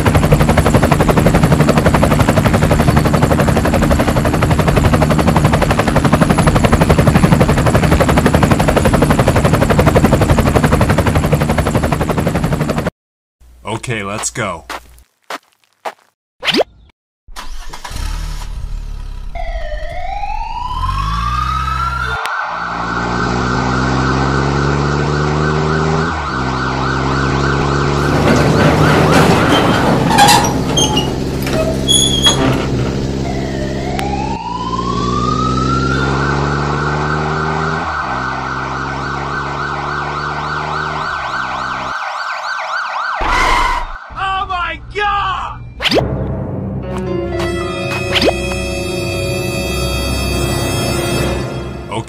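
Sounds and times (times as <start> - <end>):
low vehicle drone: 17.9 - 42.0
police siren warbling: 19.3 - 32.0, 32.7 - 44.2.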